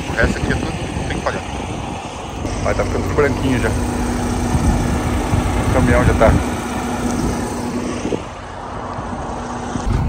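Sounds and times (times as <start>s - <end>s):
truck diesel engine idling: 0.0s - 9.8s
outdoor background noise: 0.0s - 10.0s
truck rumbling on road: 0.0s - 10.0s.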